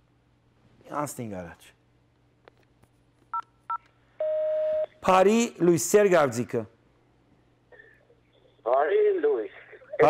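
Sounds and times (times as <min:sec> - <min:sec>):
long buzzy beep: 0:04.2 - 0:04.9.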